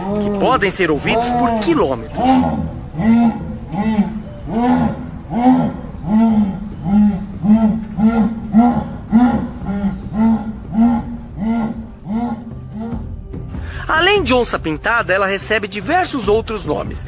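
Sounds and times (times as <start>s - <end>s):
jaguar rasping grunts: 0.0s - 13.2s.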